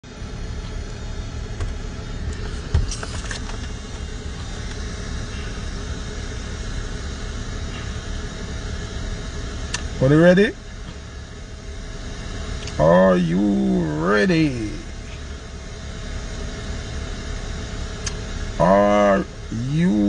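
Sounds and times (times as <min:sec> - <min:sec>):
car cabin rumble: 0:00.1 - 0:20.0.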